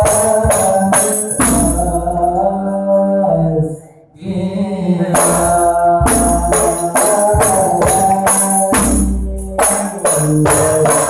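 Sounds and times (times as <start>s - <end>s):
men chanting into microphones: 0.0s - 11.0s.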